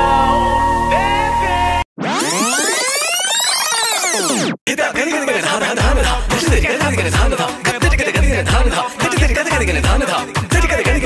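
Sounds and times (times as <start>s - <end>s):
synthesized sweep effect: 0.0s - 4.6s.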